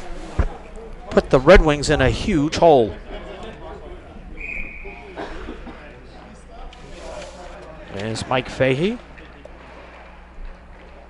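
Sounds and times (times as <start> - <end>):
distant voices: 0.0 - 11.0
short high whistle: 4.4 - 5.0.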